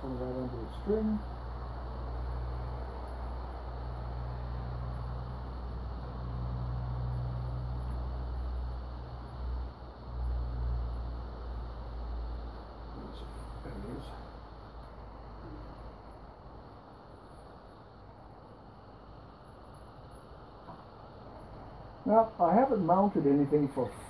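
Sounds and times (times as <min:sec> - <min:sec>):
hiss: 0:00.0 - 0:24.0
low hum: 0:00.0 - 0:24.0.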